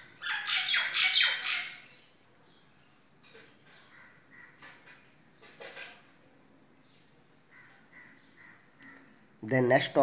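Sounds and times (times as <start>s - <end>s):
bird chirping: 0.0s - 9.2s.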